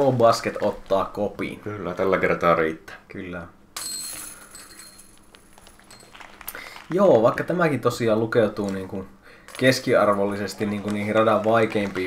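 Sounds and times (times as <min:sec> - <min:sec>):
disc striking basket chains: 0:03.8 - 0:06.3
faint metallic clinks: 0:03.8 - 0:06.4.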